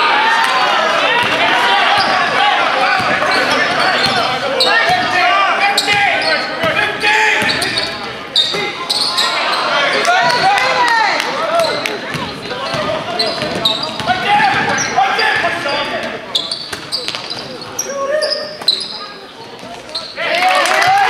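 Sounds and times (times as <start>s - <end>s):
sneakers squeaking: 1.0s - 10.8s, 11.4s - 20.3s.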